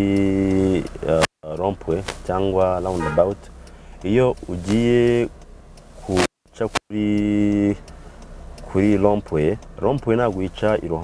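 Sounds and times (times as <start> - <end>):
man talking: 0.0 - 5.3, 6.0 - 7.8, 8.7 - 11.0
man holding a vowel: 2.4 - 3.4.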